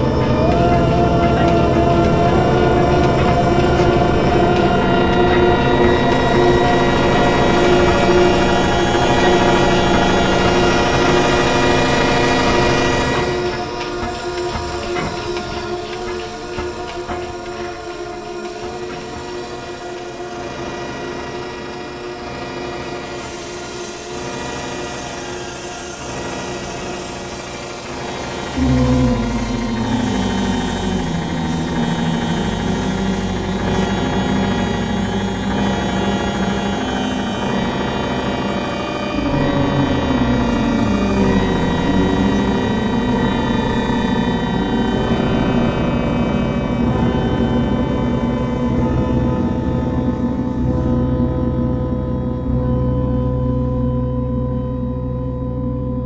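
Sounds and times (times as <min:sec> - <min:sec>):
loud low wavering drone: 0:00.0 - 0:56.0
sustained synthesizer tones: 0:00.0 - 0:56.0.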